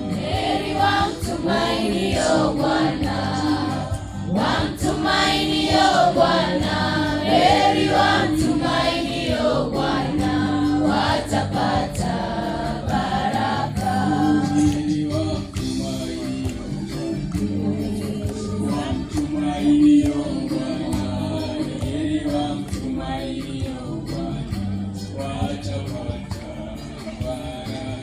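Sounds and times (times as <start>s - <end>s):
choir singing: 0.0s - 16.3s, 17.4s - 28.0s.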